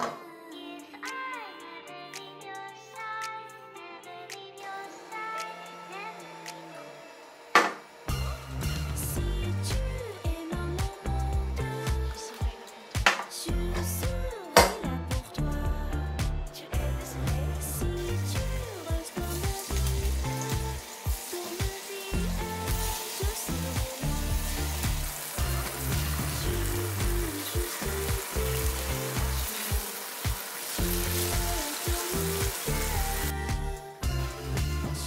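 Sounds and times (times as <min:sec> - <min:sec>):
background music: 0:00.0 - 0:35.0
tofu sizzling in oil: 0:18.1 - 0:33.6.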